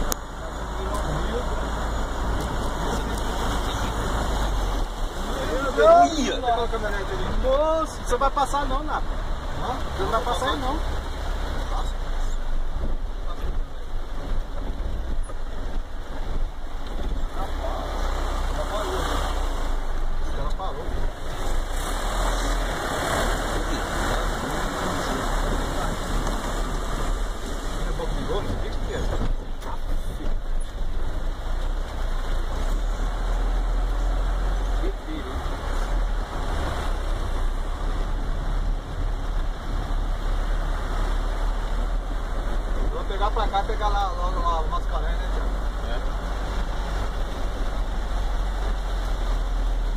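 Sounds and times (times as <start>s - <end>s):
heavy rain: 0.0s - 49.9s
low vehicle engine rumble: 0.0s - 49.9s
water running over street: 0.0s - 49.9s.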